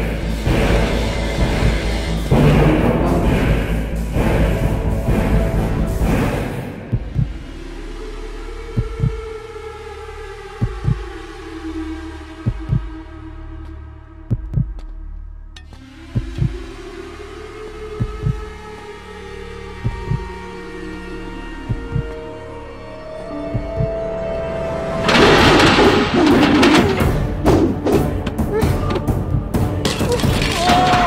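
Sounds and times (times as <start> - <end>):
low heartbeat-like thumps: 0.4 - 7.6, 8.7 - 9.3, 10.6 - 11.2, 12.4 - 13.1, 14.2 - 15.0, 16.1 - 16.8, 18.0 - 18.6, 19.8 - 20.4, 21.6 - 22.2, 23.4 - 24.0
held drone tones: 0.4 - 9.0, 15.7 - 27.1.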